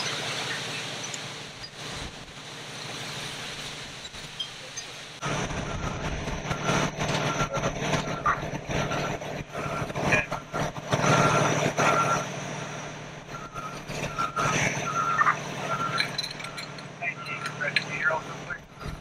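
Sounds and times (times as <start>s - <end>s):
truck engine humming: 0.0s - 19.0s
truck backup alarm beeping: 5.2s - 19.0s
knocks and clatter: 15.9s - 18.1s.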